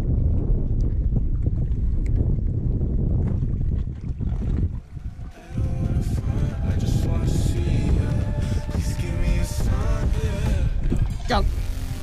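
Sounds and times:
wind rumbling on microphone: 0.0 - 12.0
background music: 5.1 - 12.0.

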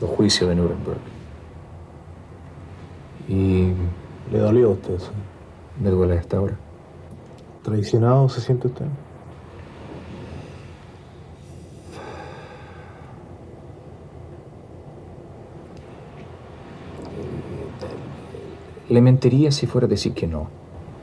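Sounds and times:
room hiss: 0.0 - 21.0
man breathing out: 11.4 - 13.3.

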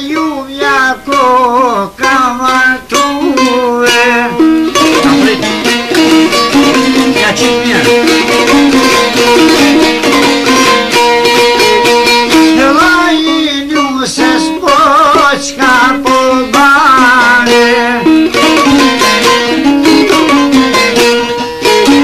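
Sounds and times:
man singing with ornamented voice: 0.0 - 10.8, 12.3 - 20.9
plucked string notes: 0.0 - 22.0.

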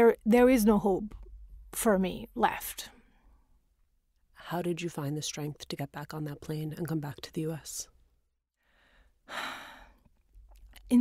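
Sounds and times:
woman drawing a breath: 8.6 - 10.1.

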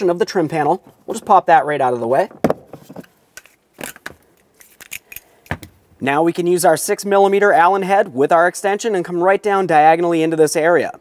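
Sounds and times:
metal tools clicking and tapping: 3.4 - 5.7.

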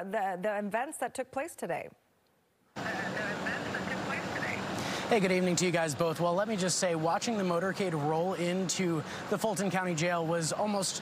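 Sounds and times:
street rumble: 2.8 - 11.0.

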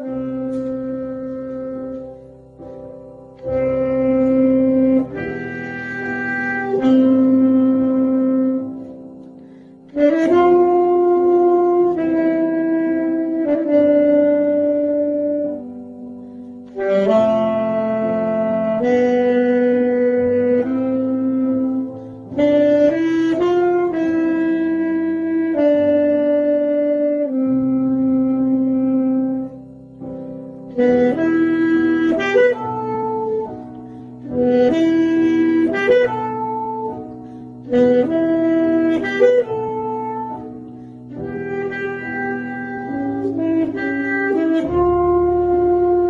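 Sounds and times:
solo wind instrument melody: 0.0 - 46.0.

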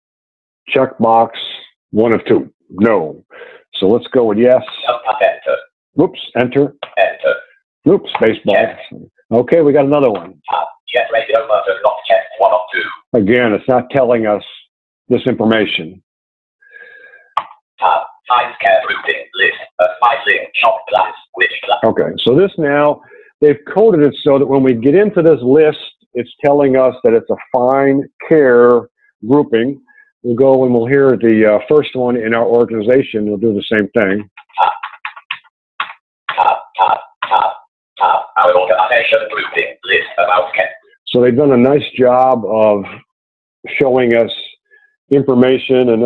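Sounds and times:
synthetic screen reader voice: 3.8 - 14.6, 17.8 - 23.6, 34.0 - 43.0.

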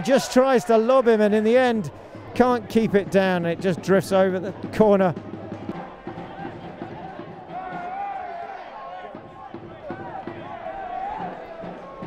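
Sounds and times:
crowd hum: 0.0 - 12.0
players calling: 0.0 - 12.0.

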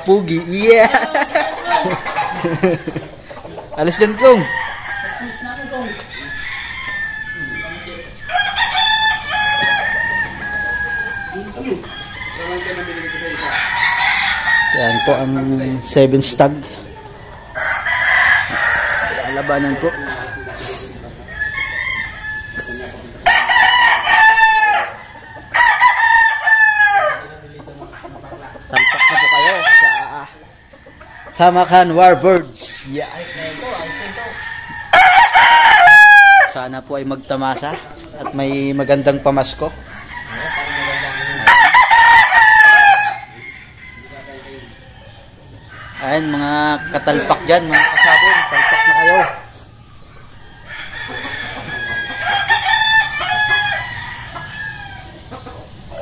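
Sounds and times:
roosters crowing: 0.0 - 56.0.

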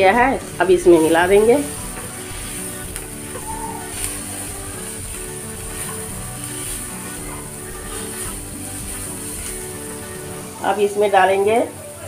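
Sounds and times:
frying sizzle: 0.0 - 12.0
slow background music: 0.0 - 12.0
spatula scraping a pan: 0.7 - 10.5.

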